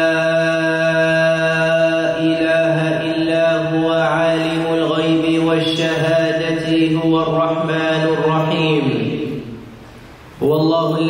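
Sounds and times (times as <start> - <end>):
man chanting: 0.0 - 9.6, 10.4 - 11.0.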